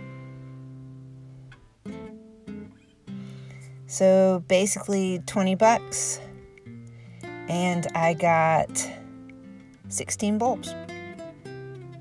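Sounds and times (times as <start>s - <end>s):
acoustic guitar chords: 0.0s - 12.0s.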